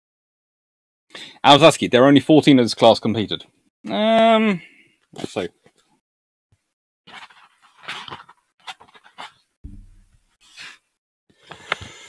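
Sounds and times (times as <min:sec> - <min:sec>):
book pages rustling: 0:07.1 - 0:09.5
low bump: 0:09.6 - 0:10.2.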